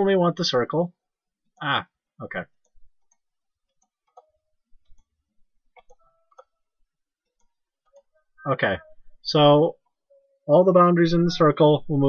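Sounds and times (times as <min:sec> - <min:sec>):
computer mouse clicks: 0:02.6 - 0:06.5.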